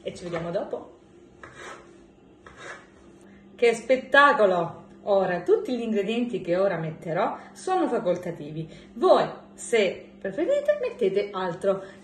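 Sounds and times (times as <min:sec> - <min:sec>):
knife cutting onto wooden board: 0:01.4 - 0:02.9.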